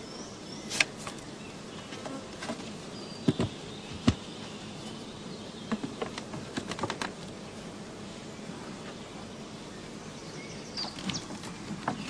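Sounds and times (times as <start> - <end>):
honeybees buzzing: 0.0 - 12.0
knocks of hive equipment: 1.9 - 4.3, 5.6 - 7.3.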